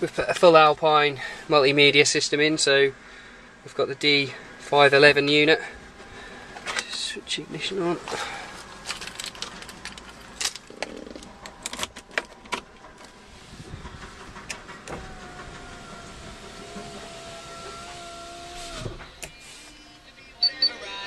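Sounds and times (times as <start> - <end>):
sharp clicks and knocks: 9.0 - 17.2
electric window motor whining: 10.6 - 20.0.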